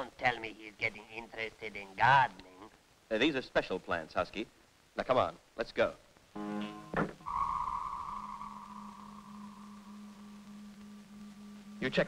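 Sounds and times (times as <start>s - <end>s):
high sonar-like tone: 7.2s - 12.0s
low electronic hum: 7.5s - 12.0s.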